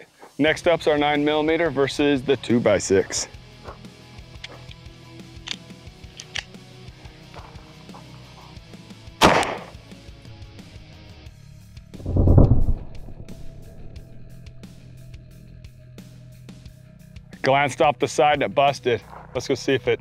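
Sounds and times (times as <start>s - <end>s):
pistol shot: 9.2s - 9.8s
deep slowed-down boom: 12.0s - 15.5s.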